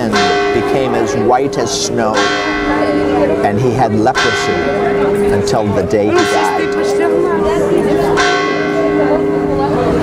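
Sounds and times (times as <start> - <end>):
bell ringing: 0.0 - 10.0.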